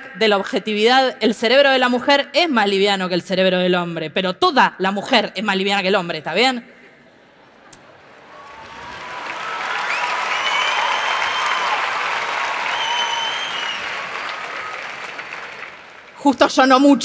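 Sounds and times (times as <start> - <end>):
audience applauding: 8.2 - 16.2.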